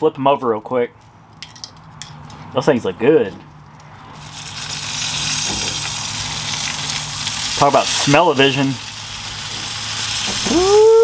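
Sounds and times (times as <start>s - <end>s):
meat sizzling on a grate: 4.1s - 11.0s
loud high-pitched howl: 10.4s - 11.0s.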